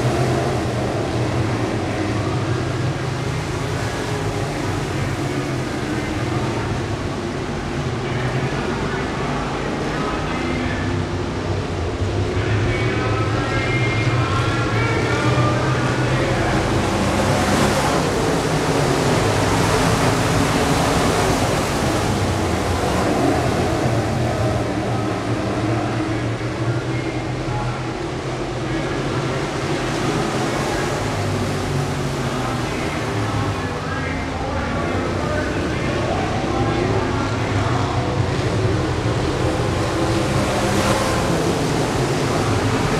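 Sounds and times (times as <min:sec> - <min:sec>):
race car engines running hard: 0:00.0 - 0:42.9.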